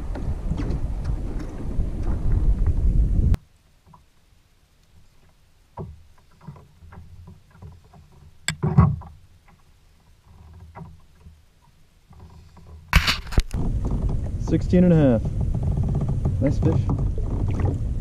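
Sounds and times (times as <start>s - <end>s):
wind on microphone: 0.0s - 3.4s, 13.0s - 18.0s
small clicks and rustles: 3.3s - 14.4s
sharp click and knock: 8.5s - 9.6s.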